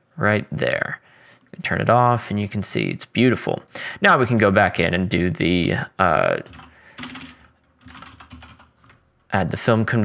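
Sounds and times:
typing on computer keyboard: 6.4s - 9.0s.

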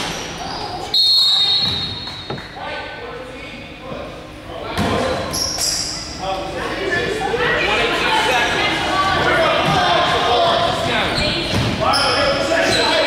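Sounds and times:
shoes squeaking: 10.9s - 13.0s.

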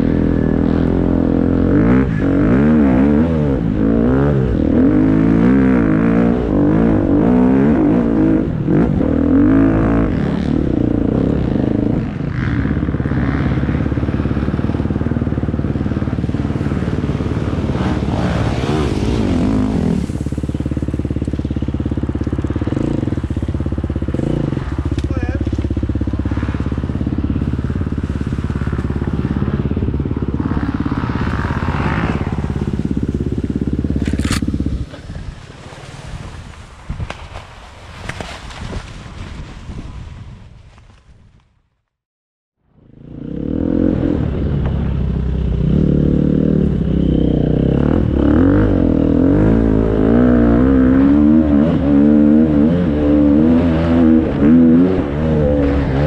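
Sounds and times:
dirt bike engine revving: 0.0s - 35.2s, 43.1s - 56.0s.

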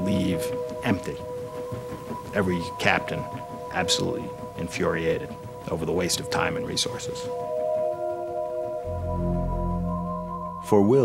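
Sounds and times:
soft sustained background music: 0.0s - 11.0s
deep low note: 8.8s - 11.0s.

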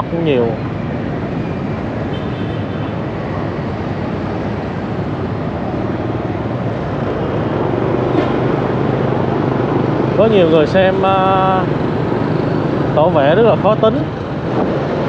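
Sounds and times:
motorbike and scooter traffic: 0.0s - 15.0s.

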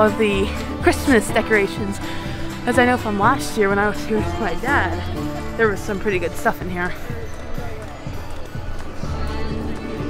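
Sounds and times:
faint voices: 0.0s - 10.0s
music playing: 0.0s - 10.0s.

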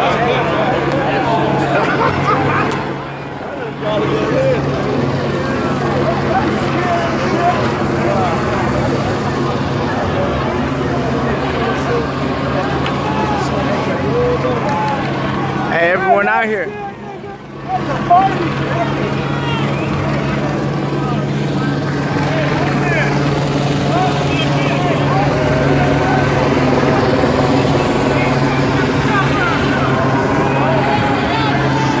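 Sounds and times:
crowd talking and calling out: 0.0s - 32.0s
low mechanical drone: 0.0s - 32.0s.

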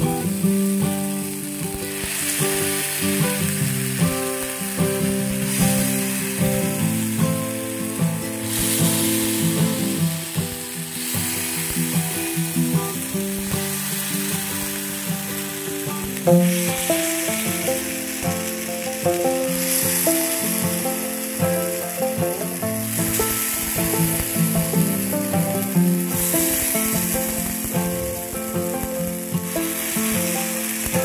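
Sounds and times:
batter sizzling in a pan: 0.0s - 31.0s.

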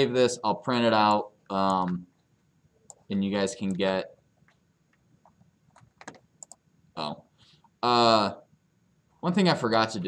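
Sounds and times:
computer keys clicking: 2.9s - 6.6s.

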